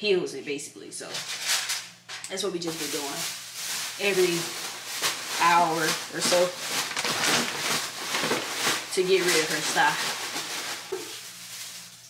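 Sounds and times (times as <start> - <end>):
hot oil sizzling and crackling: 2.8 - 5.5, 9.8 - 12.0.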